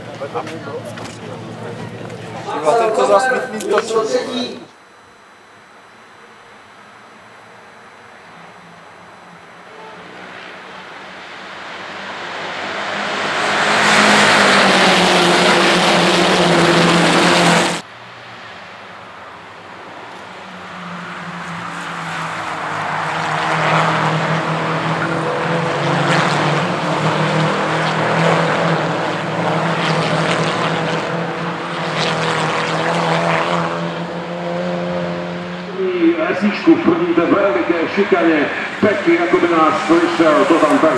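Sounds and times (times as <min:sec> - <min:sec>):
race cars passing at high revs: 0:00.0 - 0:40.9.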